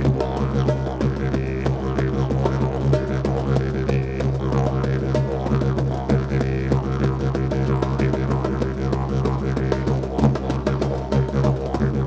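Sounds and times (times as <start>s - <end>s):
didgeridoo drone: 0.0s - 12.0s
hand drums: 0.0s - 12.0s.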